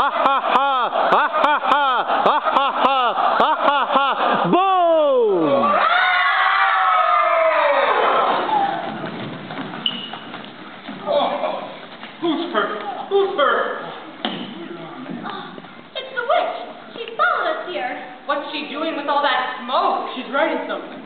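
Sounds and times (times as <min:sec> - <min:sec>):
chorus singing rhythmic laugh: 0:00.0 - 0:04.6
high held cry: 0:00.0 - 0:08.9.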